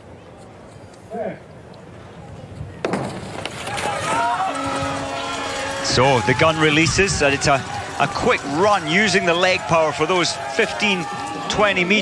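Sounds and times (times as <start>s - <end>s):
crowd cheering and shouting: 3.6s - 12.0s
steady horn note: 4.4s - 6.2s.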